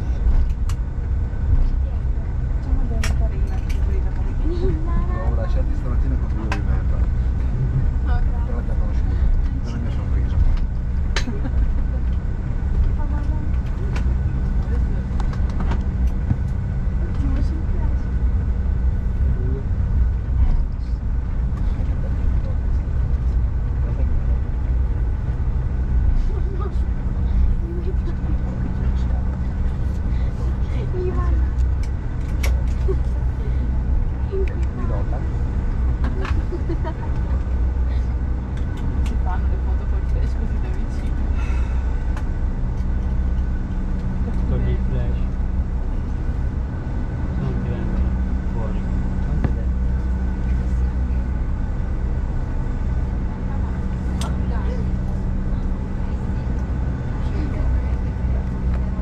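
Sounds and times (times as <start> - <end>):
faint steady whine: 0.0 - 59.0
low rumble of jet engines: 0.0 - 59.0.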